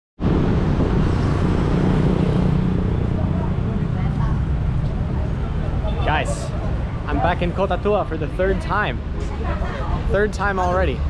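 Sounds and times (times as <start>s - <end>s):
road traffic rumble: 0.2s - 11.0s.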